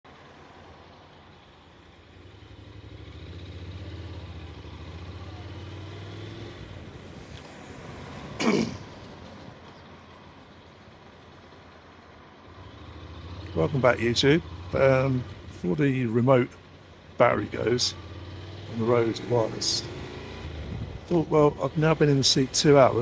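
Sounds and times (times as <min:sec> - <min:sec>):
road traffic: 0:00.0 - 0:23.0
motorcycle engine drone: 0:00.1 - 0:23.0.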